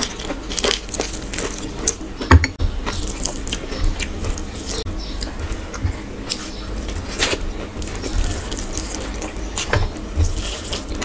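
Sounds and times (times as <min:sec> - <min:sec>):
person chewing: 0:00.0 - 0:11.0
fingers squishing rice: 0:02.8 - 0:11.0.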